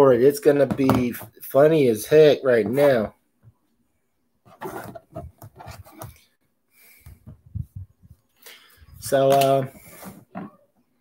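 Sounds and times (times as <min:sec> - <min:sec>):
rubbing and scraping handling noise: 0:04.4 - 0:10.9.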